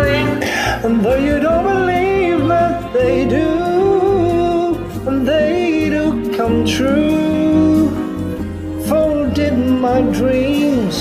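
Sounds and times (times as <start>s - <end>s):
backing track music: 0.0s - 11.0s
wordless singing: 0.0s - 11.0s.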